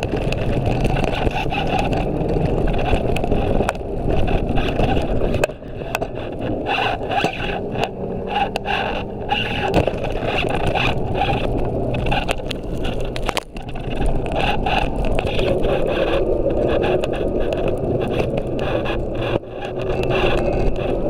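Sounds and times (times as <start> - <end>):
scooter wheels rolling on pavement: 0.0 - 21.0
wheels knocking over paving joints: 0.0 - 21.0.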